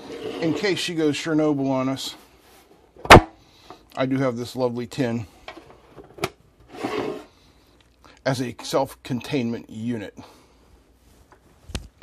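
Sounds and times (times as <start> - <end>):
tin scraping on wooden bench: 0.0 - 0.9, 6.0 - 7.3.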